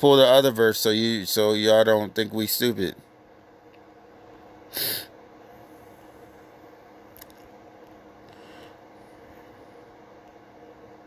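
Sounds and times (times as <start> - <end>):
faint steady hum: 0.0 - 11.0
sharp breath near microphone: 8.3 - 8.8.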